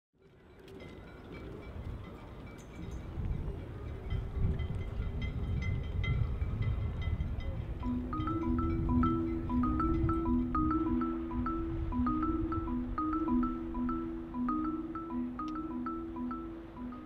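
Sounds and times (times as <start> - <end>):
low wind rumble: 0.7 - 17.0
metallic chiming pings: 0.7 - 17.0
marimba tune: 7.4 - 17.0.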